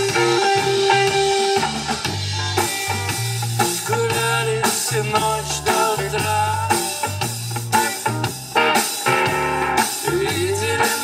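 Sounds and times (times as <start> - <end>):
bass guitar: 0.0 - 11.0
drum kit steady beat: 0.0 - 11.0
electric guitar: 0.0 - 11.0.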